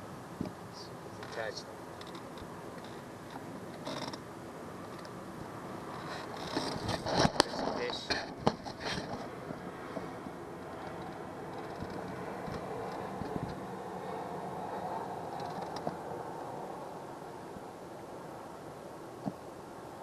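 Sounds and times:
steady hum: 0.0s - 20.0s
wind: 0.0s - 20.0s.

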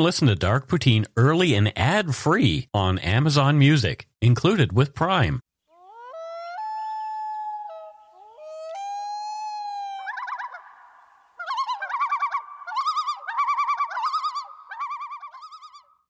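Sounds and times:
loon wailing and tremolo calls: 5.6s - 16.0s.

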